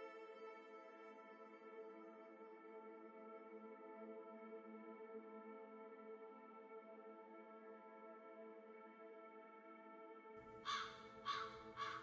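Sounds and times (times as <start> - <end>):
ambient music drone: 0.0 - 12.0
crow cawing: 10.6 - 12.0.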